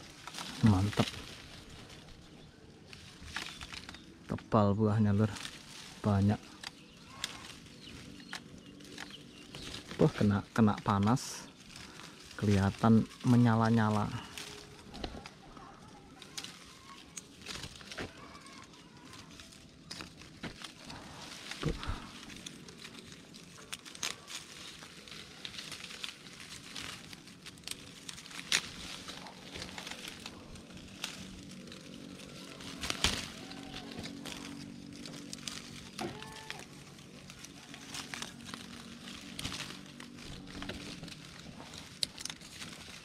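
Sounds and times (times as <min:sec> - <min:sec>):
leaves and twigs rustling: 0:00.0 - 0:43.0
sharp twig snaps: 0:32.2 - 0:36.9.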